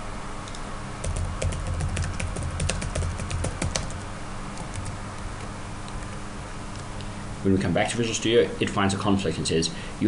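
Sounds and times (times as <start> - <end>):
typing on computer keyboard: 1.0 - 4.0, 4.6 - 5.0.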